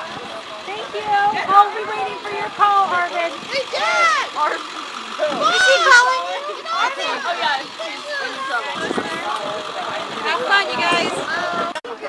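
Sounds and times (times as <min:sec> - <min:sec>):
excited voices calling out: 0:00.0 - 0:12.0.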